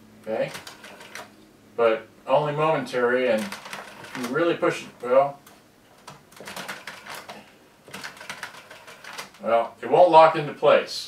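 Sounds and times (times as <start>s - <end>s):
cassette mechanism clicking: 0.3s - 1.3s.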